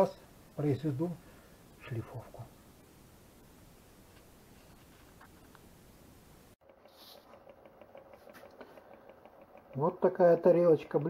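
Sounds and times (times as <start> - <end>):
light regular ticking: 6.6 - 11.0
rotating display stand humming: 6.6 - 11.0.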